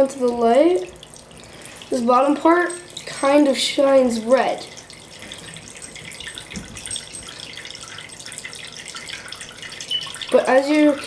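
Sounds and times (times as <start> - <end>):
water trickling into a dish: 0.0 - 11.0.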